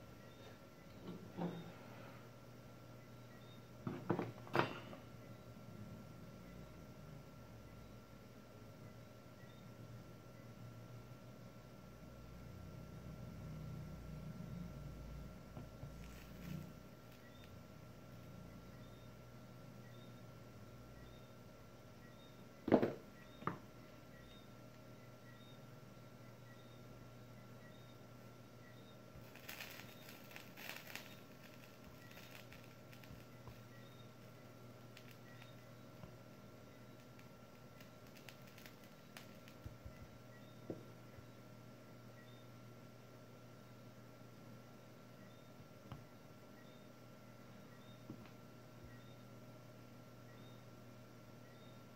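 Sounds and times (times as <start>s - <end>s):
faint steady hum: 0.0s - 51.9s.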